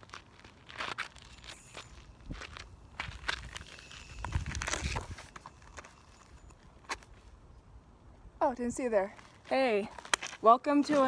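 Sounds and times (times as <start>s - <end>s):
footsteps near microphone: 0.0s - 7.4s.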